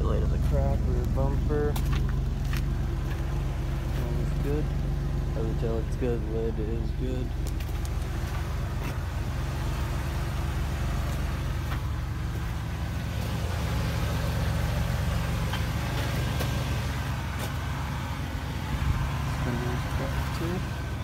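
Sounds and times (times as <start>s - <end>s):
car engine idling: 0.0s - 21.0s.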